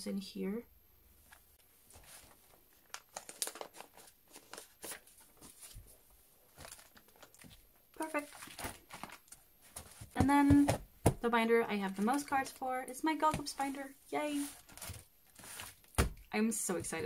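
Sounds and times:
plastic sleeve crinkling: 0:01.3 - 0:10.2, 0:13.3 - 0:16.2.

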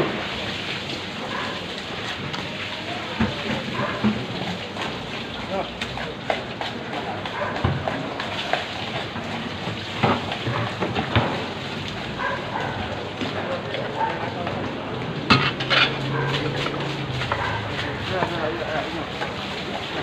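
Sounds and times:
chatter: 0:01.3 - 0:09.6, 0:12.0 - 0:20.0.

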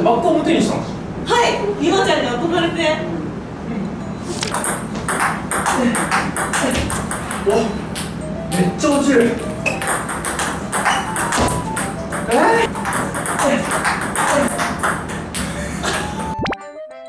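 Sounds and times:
ball bouncing on table: 0:04.5 - 0:08.2, 0:09.2 - 0:15.5
ping-pong ball clicking off paddles: 0:04.5 - 0:16.3
background music: 0:08.0 - 0:17.0.

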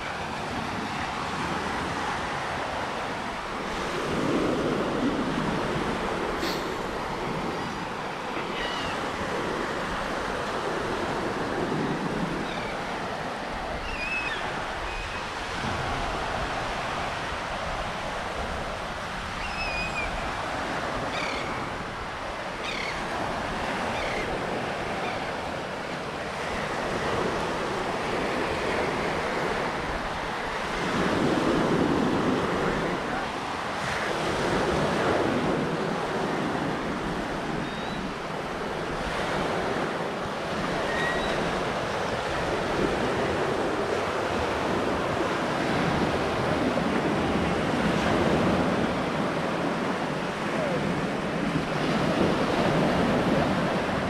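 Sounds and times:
surf breaking on beach: 0:00.0 - 0:54.0
wind buffeting microphone: 0:00.0 - 0:54.0
birds chirping: 0:22.6 - 0:23.0.

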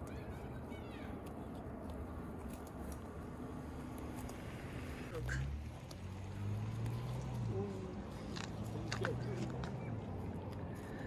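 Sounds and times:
sheep cropping grass: 0:00.0 - 0:07.5.

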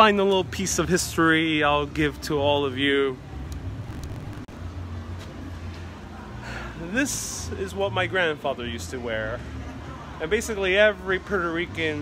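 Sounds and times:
low traffic rumble: 0:00.8 - 0:07.5.

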